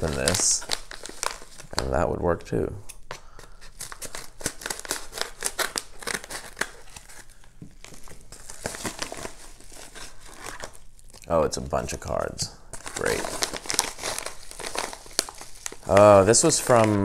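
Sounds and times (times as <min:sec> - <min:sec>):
paper mailer crinkling: 0:00.0 - 0:02.5, 0:03.6 - 0:10.8, 0:12.7 - 0:17.0.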